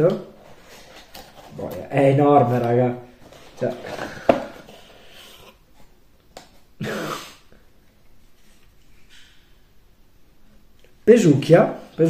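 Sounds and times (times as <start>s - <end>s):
cardboard packaging rustling: 0.4s - 5.9s.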